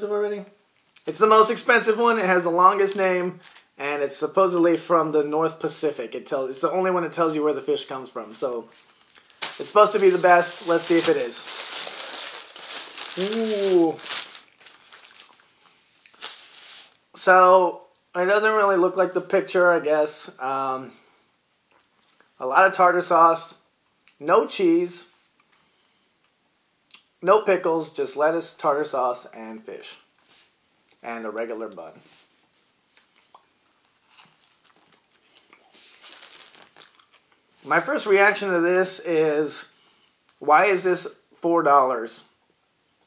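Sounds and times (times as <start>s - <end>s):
paper wrapper rustling: 8.1s - 17.0s, 35.7s - 37.2s
person chewing crunchy food: 11.4s - 16.8s, 32.9s - 37.4s.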